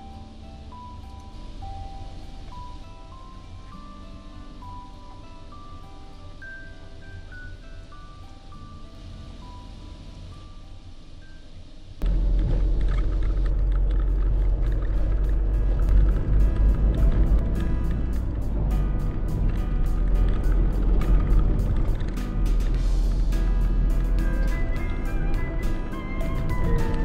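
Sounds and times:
soft bell-like melody: 0.0 - 11.7
vehicle driving rumble: 12.0 - 27.0
music with steady beat: 14.9 - 27.0.

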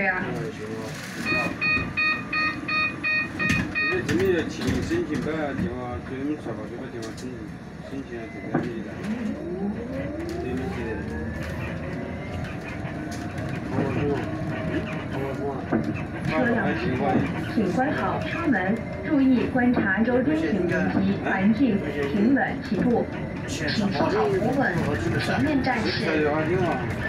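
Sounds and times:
passengers talking: 0.0 - 27.0
bus door warning beeps: 1.2 - 4.8.

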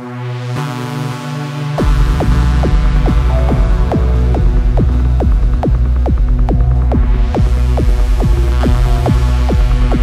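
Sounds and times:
deep throbbing bass drone: 1.6 - 10.0
downward-sweeping synth notes: 1.8 - 8.6.

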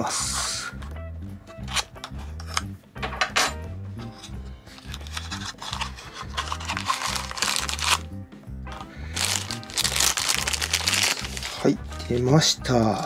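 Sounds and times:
background music: 0.0 - 13.0
plastic bag crinkling: 4.8 - 8.0, 9.1 - 11.7.

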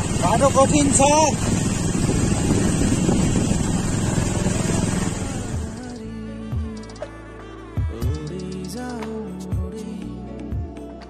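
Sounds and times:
motorcycle riding on dirt: 0.0 - 6.0
wind on microphone: 0.0 - 6.0.

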